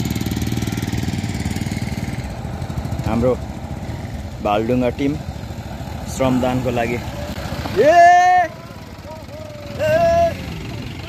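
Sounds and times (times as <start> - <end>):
vehicle engine running: 0.0 - 11.0
voices shouting: 5.2 - 11.0.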